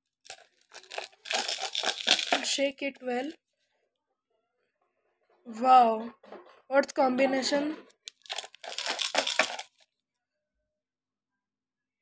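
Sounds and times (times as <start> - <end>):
glass pieces clinking in kaleidoscope: 0.3 - 2.5, 8.1 - 9.8.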